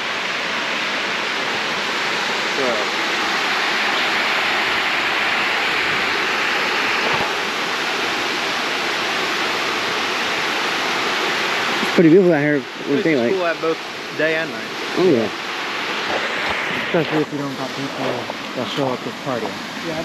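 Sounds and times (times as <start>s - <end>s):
water rushing over weir: 0.0s - 20.0s.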